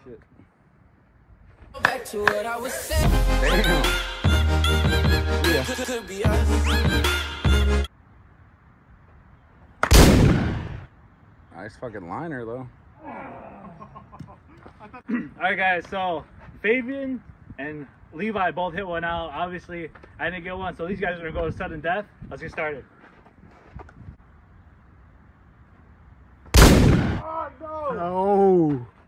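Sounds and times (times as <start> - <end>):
wind rumble on microphone: 20.3 - 22.6, 23.4 - 24.4.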